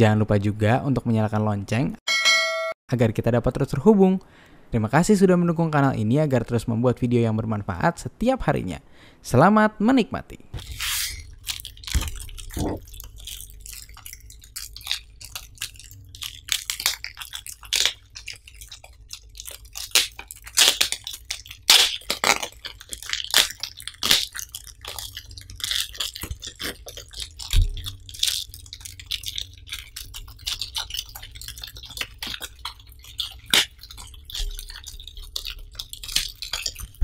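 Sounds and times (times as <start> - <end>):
plastic bag crinkling: 10.6 - 37.0.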